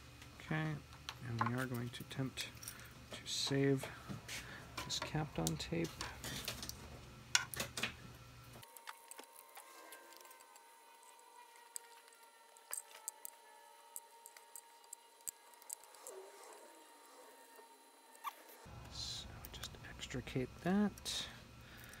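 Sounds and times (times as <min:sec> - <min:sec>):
tape peeling with clicks and crinkles: 0:08.6 - 0:18.6.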